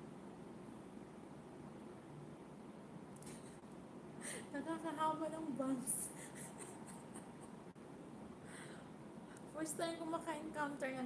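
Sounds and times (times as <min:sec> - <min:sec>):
quiet room hiss: 0:00.0 - 0:11.0.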